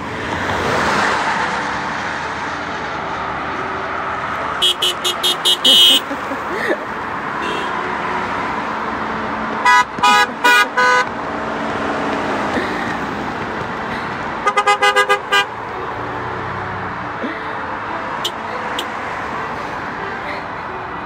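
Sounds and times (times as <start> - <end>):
cars driving by: 0.0 - 21.0
car horns honking: 4.4 - 6.4, 7.3 - 8.4, 9.5 - 11.3, 14.4 - 16.1, 18.1 - 19.1.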